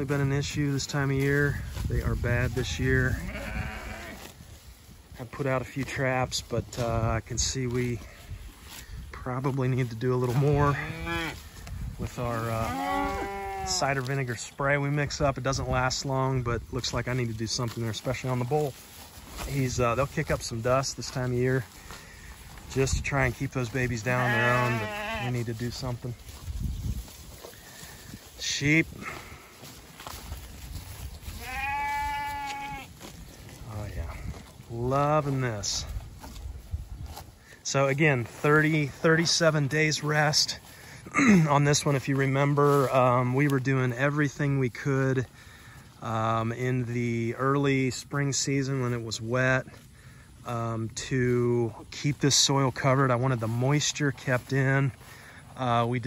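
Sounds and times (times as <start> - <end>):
grass rustling: 0.0 - 56.0
hoof steps in grass: 0.0 - 56.0
sheep bleating: 3.1 - 4.3, 12.6 - 13.8, 24.0 - 25.4, 31.3 - 32.9.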